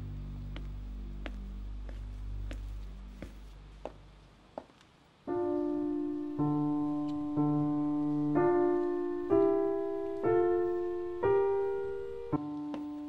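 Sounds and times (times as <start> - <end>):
low music drone with ticks: 0.0 - 4.0, 6.3 - 11.4, 12.3 - 13.0
grand piano slow notes: 5.3 - 13.0.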